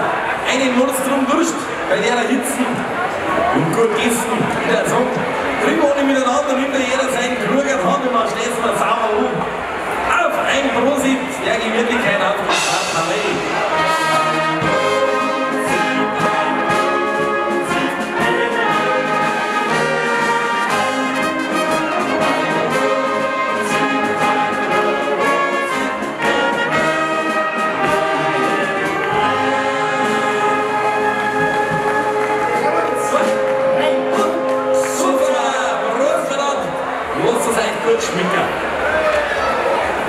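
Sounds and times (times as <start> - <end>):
brass band playing: 0.0 - 40.0.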